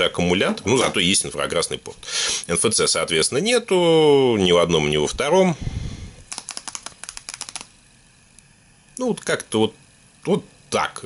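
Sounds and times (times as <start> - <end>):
rapid light clicks: 6.3 - 8.5.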